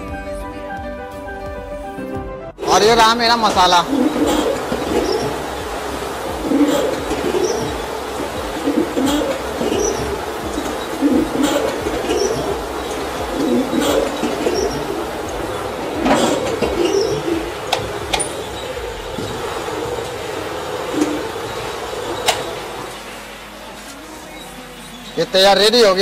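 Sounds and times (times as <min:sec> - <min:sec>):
seasoning drum tumbling puffs: 0:02.6 - 0:22.9.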